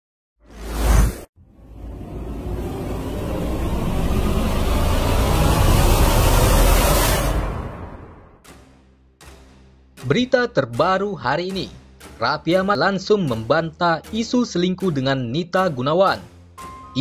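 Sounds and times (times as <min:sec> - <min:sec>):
whoosh sound effects: 0:00.5 - 0:08.4.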